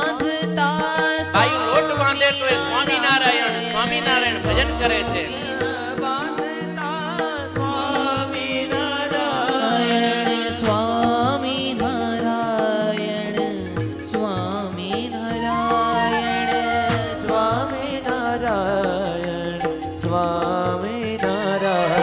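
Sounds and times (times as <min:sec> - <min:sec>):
devotional chant singing: 0:00.0 - 0:22.0
instrumental accompaniment with beat: 0:00.0 - 0:22.0.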